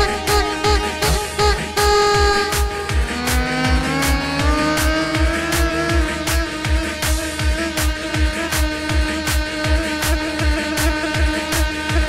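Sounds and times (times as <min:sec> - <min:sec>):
bass drum beat: 0:00.0 - 0:12.0.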